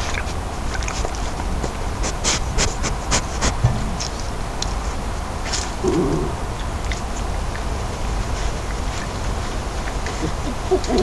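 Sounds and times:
badger sniffing and snuffling: 0.0s - 4.2s, 5.4s - 7.2s, 8.2s - 11.0s.

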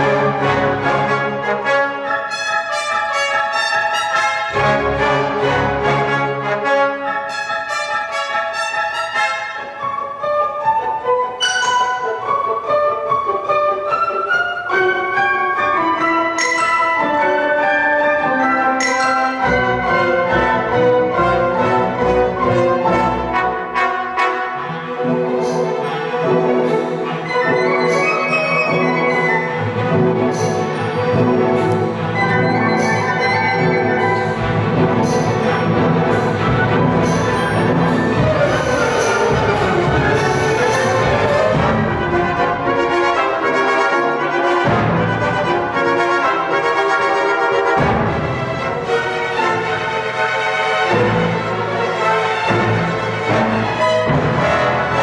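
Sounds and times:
symphony orchestra with brass: 0.0s - 55.0s.

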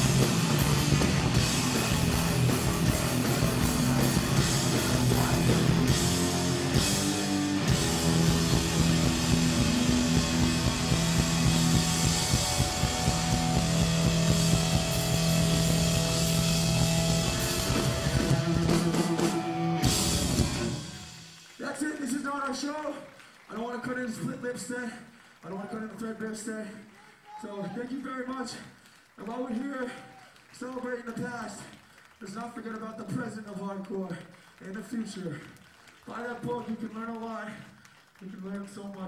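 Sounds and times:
hardcore punk band playing live: 0.0s - 21.3s.

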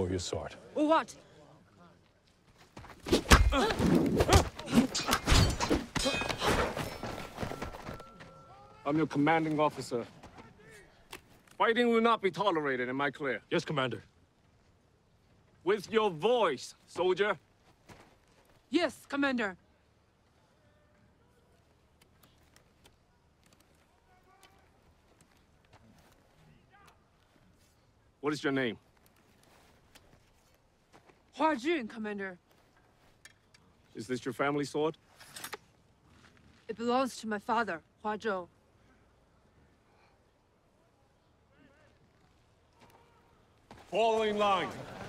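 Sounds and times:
thuds of fight blows: 2.9s - 7.4s.

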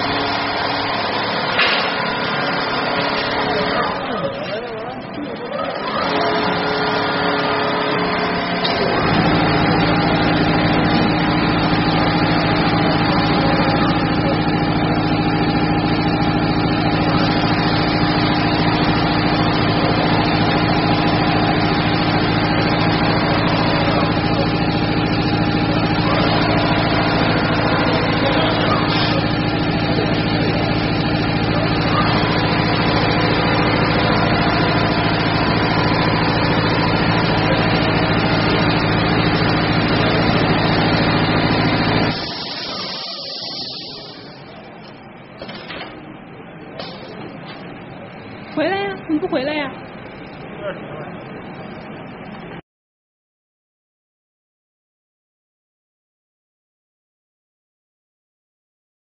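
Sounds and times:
quilting machine stitching: 5.7s - 44.3s.

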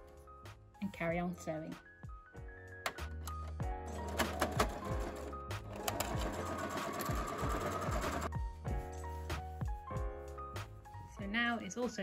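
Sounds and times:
sewing machine stitching: 3.9s - 8.3s.

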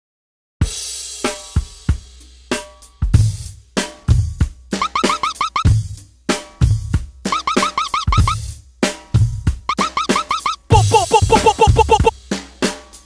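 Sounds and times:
kick and snare beat with hi-hat: 0.6s - 13.0s
rising synth blips: 4.8s - 5.6s, 7.3s - 8.4s, 9.7s - 12.1s.

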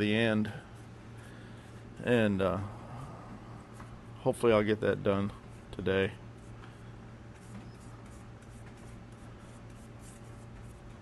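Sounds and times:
steady low hum: 0.0s - 11.0s
paintbrush strokes on wood: 6.4s - 11.0s.

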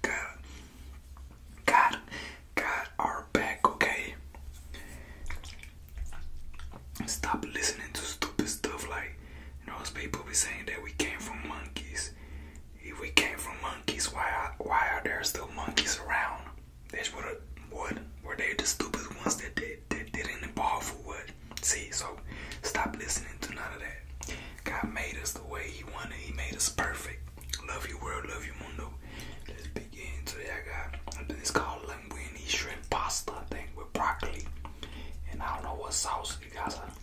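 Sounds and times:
man whispering: 0.0s - 5.0s, 6.0s - 37.0s
steady low hum: 0.0s - 37.0s.

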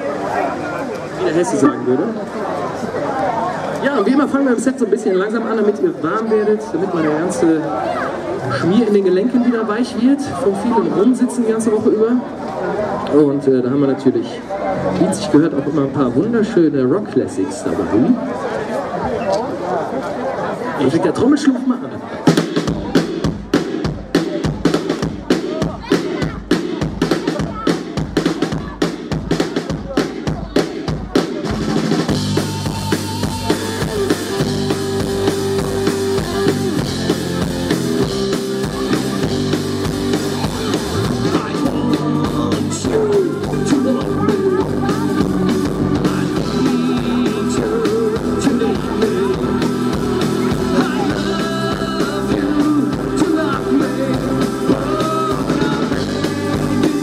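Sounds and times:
live rock band playing: 22.2s - 57.0s
drum kit beat: 22.3s - 57.0s.

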